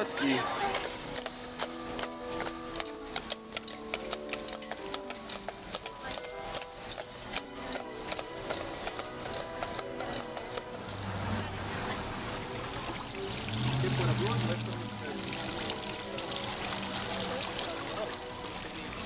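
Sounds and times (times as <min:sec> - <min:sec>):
background music: 0:00.0 - 0:19.0
horse hooves on pavement: 0:00.6 - 0:12.0
fountain water splashing: 0:09.6 - 0:19.0.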